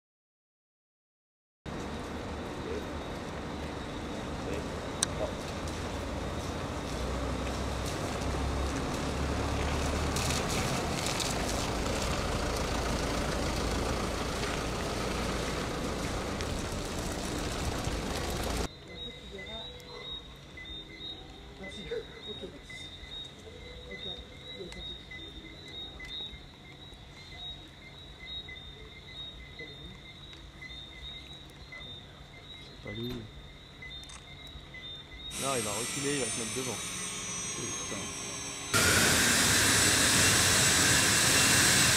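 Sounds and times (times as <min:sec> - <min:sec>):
crickets or frogs chirping: 0:01.7 - 0:10.0, 0:11.6 - 0:38.8
car engine rumbling: 0:05.8 - 0:18.7.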